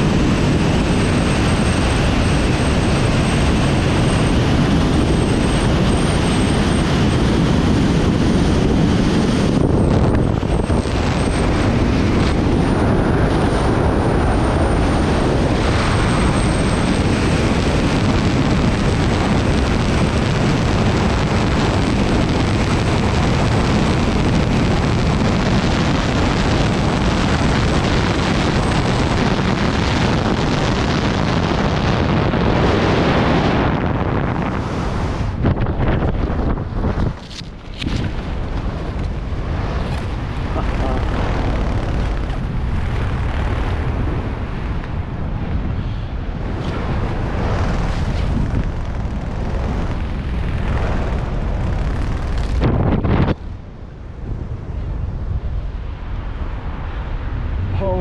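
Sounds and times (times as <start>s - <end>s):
wind rushing over camera: 0.0s - 58.0s.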